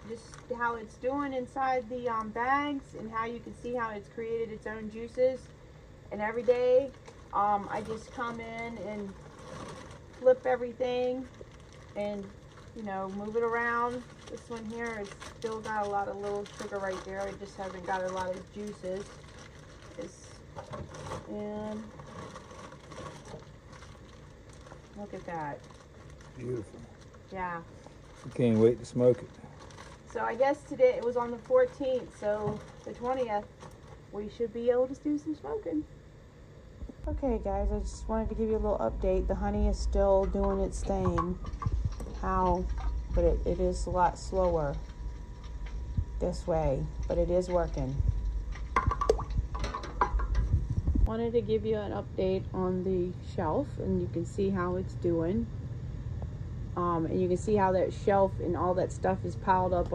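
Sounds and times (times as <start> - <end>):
low steady hum: 0.0 - 59.9
plastic bags crinkling: 6.4 - 34.0
plastic wrap handling: 6.4 - 34.0.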